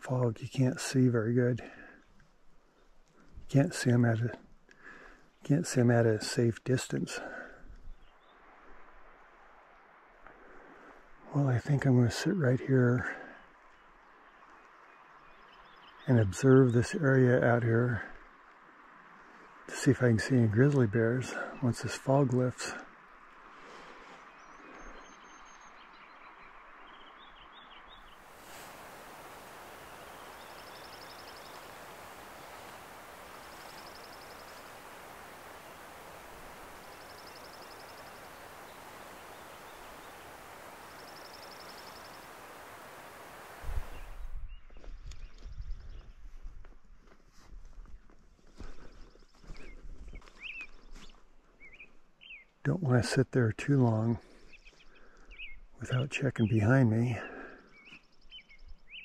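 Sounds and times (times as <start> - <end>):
bird chirps: 24.2 - 46.2
songbird buzzy trill: 27.0 - 44.6
steady hiss: 27.8 - 44.5
low rumbling noise: 27.9 - 44.7.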